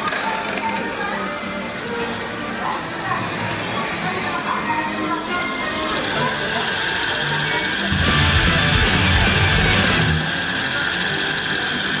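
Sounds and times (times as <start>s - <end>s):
toy car motor whining: 0.0s - 8.0s, 9.5s - 12.0s
background music: 7.8s - 10.9s.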